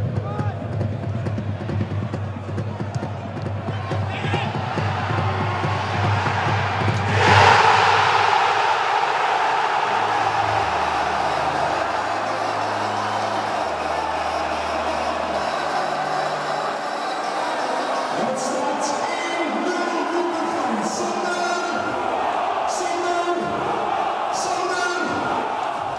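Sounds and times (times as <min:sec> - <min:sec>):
stadium crowd cheering: 0:00.0 - 0:25.9.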